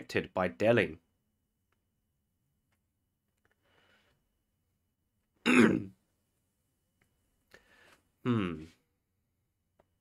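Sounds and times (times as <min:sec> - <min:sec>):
man clearing his throat: 0:05.4 - 0:06.0, 0:08.2 - 0:08.7.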